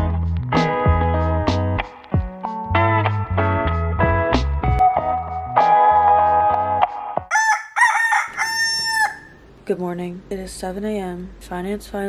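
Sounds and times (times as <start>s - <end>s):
rooster crowing: 7.3s - 9.4s.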